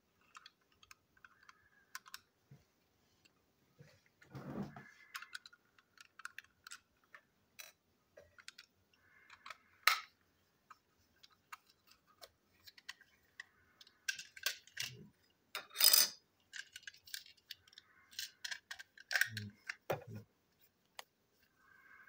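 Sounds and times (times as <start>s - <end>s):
plastic clatter: 16.5s - 20.3s.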